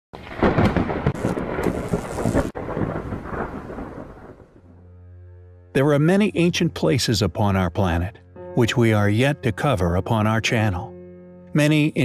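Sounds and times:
rumbling thunder: 0.2s - 4.9s.

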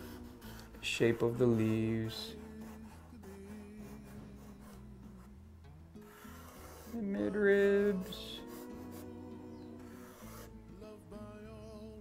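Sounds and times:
marker scratching on paper: 0.0s - 5.4s, 6.0s - 10.6s
soft background music: 0.0s - 12.0s.

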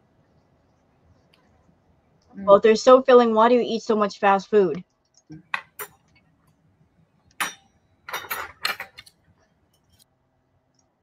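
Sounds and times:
cutlery clinking against a plate: 5.4s - 6.1s, 7.4s - 9.1s.

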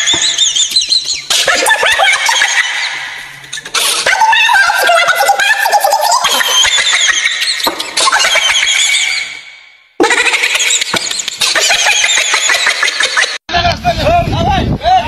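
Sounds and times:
people laughing shrilly: 0.0s - 13.4s.

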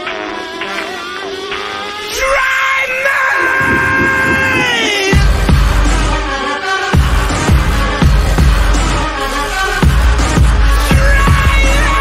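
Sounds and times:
rock vocal holding long note: 3.3s - 5.6s
low drum hits: 3.4s - 5.6s.

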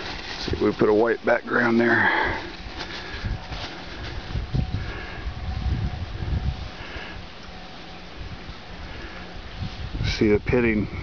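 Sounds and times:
paper towel rustling: 0.0s - 5.1s.

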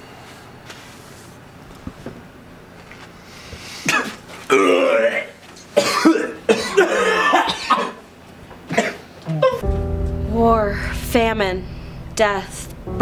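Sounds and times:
person coughing: 3.9s - 4.2s, 5.8s - 8.0s, 8.7s - 9.6s
person clearing throat: 3.9s - 8.0s, 8.7s - 9.6s.

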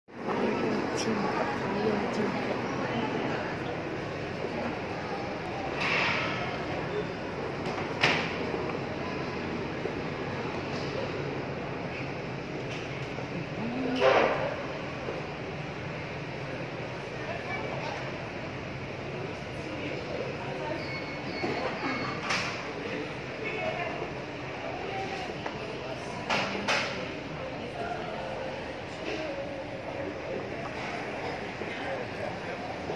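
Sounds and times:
shopping mall background noise: 0.1s - 32.9s
indistinct voices: 0.2s - 7.6s.

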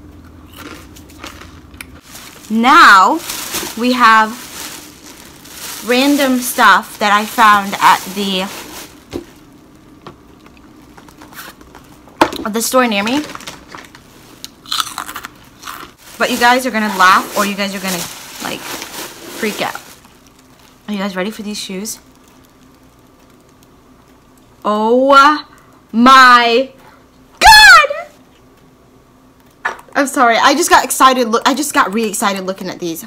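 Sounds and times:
crunchy chip chewing: 0.2s - 2.0s, 14.4s - 16.0s
packaging crunching and crinkling: 0.5s - 12.1s, 12.7s - 24.3s.

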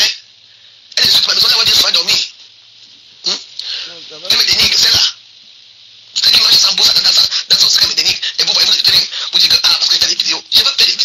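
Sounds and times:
person speaking: 3.0s - 5.2s, 6.2s - 11.0s.

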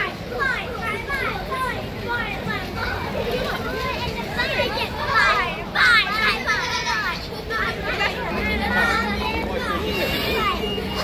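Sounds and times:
children chattering: 0.0s - 11.0s
street noise hum: 0.0s - 11.0s.

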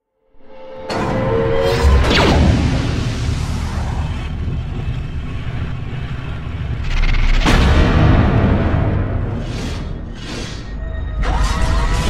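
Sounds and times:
steady low rumble: 2.4s - 10.2s.

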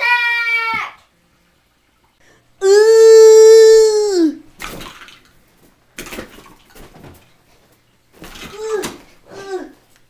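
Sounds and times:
boy yelling: 0.0s - 1.0s, 2.6s - 4.4s.

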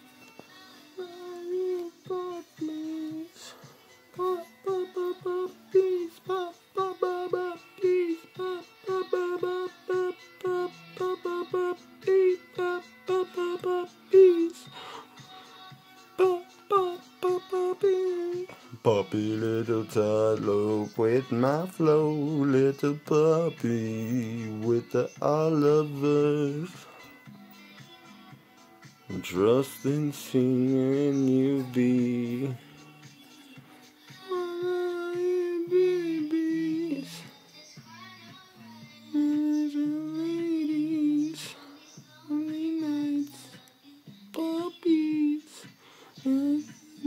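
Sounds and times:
lower singing voice: 0.0s - 47.0s
person humming slow tune: 0.9s - 27.7s, 29.1s - 37.4s, 39.0s - 43.5s, 44.3s - 47.0s.

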